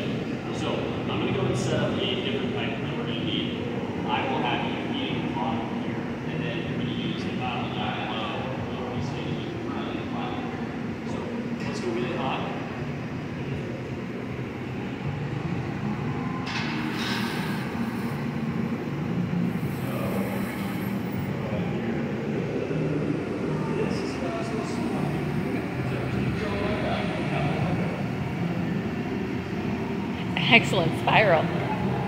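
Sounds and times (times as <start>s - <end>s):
gas furnace roaring steadily: 0.0s - 32.0s.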